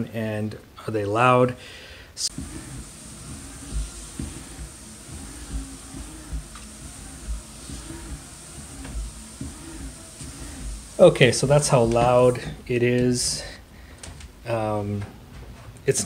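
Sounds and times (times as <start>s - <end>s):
footfalls on treadmill deck: 2.3s - 13.2s
treadmill belt rumble: 2.3s - 13.5s.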